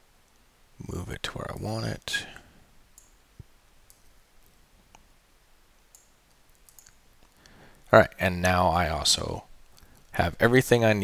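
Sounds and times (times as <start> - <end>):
computer mouse clicks: 3.0 - 3.2, 3.9 - 5.0, 5.9 - 7.6.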